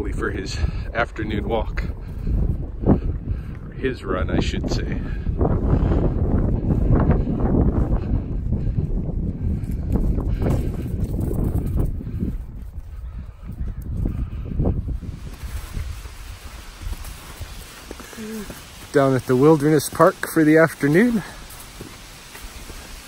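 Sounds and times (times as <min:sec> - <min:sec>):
footsteps outdoors: 0:00.0 - 0:23.0
wind buffeting microphone: 0:00.0 - 0:23.0.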